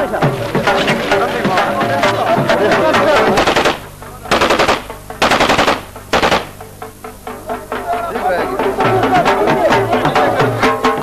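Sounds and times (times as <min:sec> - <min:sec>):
automatic gunfire bursts: 0:03.4 - 0:06.6.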